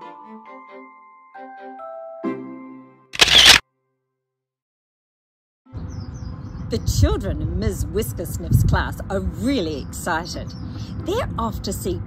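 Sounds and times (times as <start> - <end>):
light instrumental music: 0.0 - 3.5
camera shutter snap: 3.2 - 3.6.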